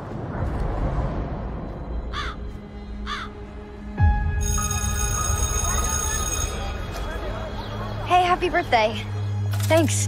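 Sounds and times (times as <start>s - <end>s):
dark low trailer music: 0.0s - 10.0s
crow cawing: 2.1s - 2.4s, 3.0s - 3.4s
bell ringing: 4.4s - 8.0s.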